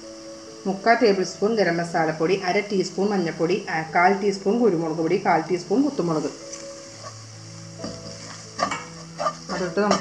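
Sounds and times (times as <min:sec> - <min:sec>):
light sizzle: 0:00.0 - 0:10.0
spoon scraping a pan: 0:06.5 - 0:10.0.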